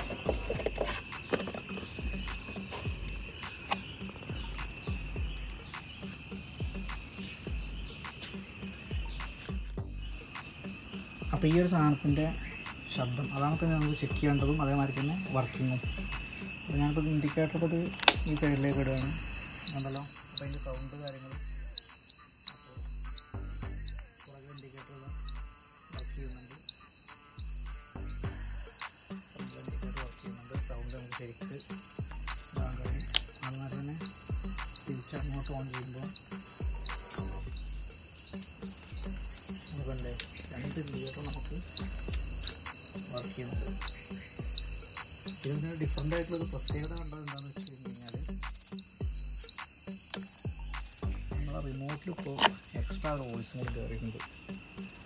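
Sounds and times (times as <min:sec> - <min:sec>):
pulsing indicator buzzer: 0:00.0 - 0:55.0.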